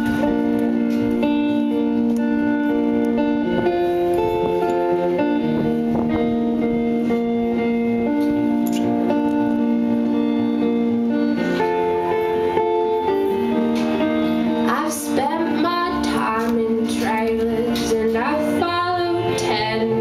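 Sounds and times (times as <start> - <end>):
acoustic guitar: 0.0 - 20.0
long held notes: 0.0 - 20.0.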